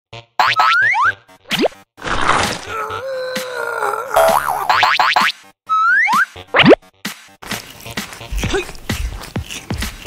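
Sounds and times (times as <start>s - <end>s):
person saying mm yummy: 8.4s - 8.8s.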